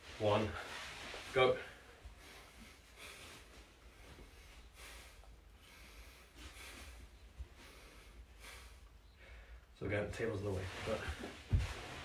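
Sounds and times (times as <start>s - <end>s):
man breathing heavily: 1.6s - 9.8s.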